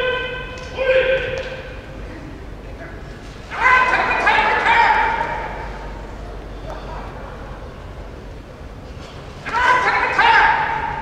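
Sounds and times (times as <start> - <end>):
referee giving high-pitched shouted call: 0.0 - 1.8, 3.5 - 5.8, 9.4 - 11.0.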